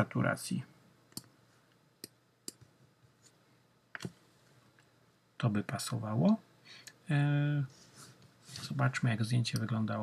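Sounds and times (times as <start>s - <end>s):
computer mouse clicks: 1.1s - 1.4s, 2.0s - 2.7s.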